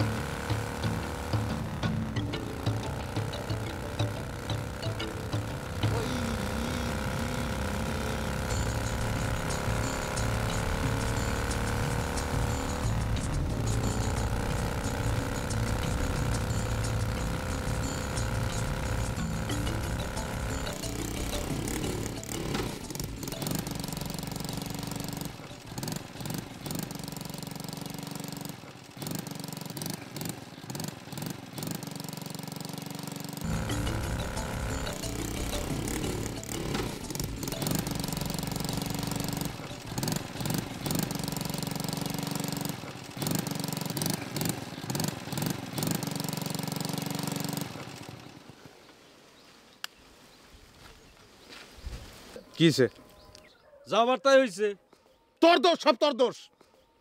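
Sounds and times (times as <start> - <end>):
looping background music: 0.0 - 27.2, 33.4 - 42.7
small motorcycle engine running: 0.0 - 49.4.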